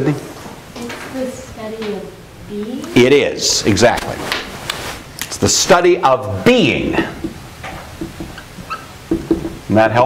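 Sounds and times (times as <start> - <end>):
marker squeaking on whiteboard: 6.8 - 7.4, 8.2 - 9.4.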